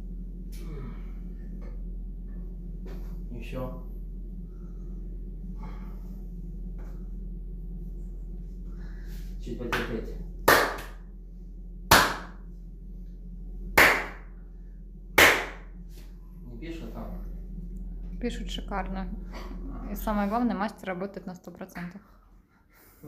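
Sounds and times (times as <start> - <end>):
low steady hum: 0.0 - 23.0
open-hand slaps on bare back: 11.9 - 12.4, 13.8 - 14.2, 15.2 - 15.6.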